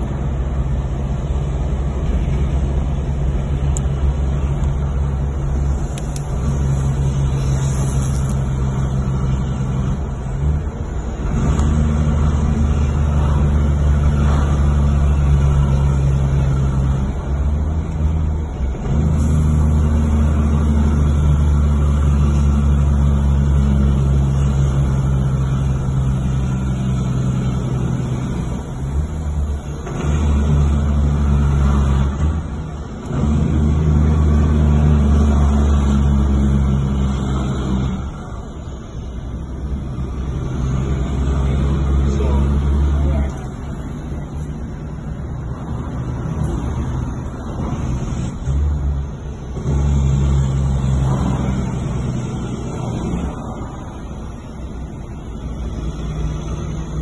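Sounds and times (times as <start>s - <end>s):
diesel truck engine drone: 0.0s - 57.0s.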